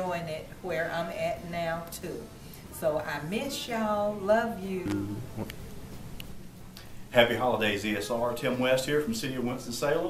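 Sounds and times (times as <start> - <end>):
low buzzing hum: 4.8 - 7.1.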